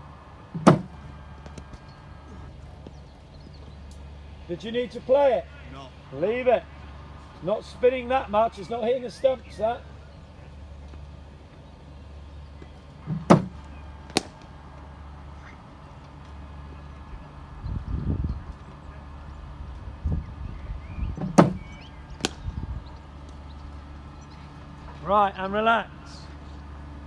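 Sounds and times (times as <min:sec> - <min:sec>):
steady low hum: 0:00.0 - 0:27.0
ball knocking at batting end: 0:00.6 - 0:01.8, 0:13.1 - 0:14.5, 0:21.2 - 0:21.6, 0:22.2 - 0:22.5.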